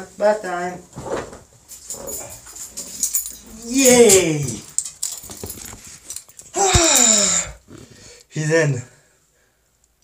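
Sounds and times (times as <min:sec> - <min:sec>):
man sighing: 0:06.5 - 0:08.2.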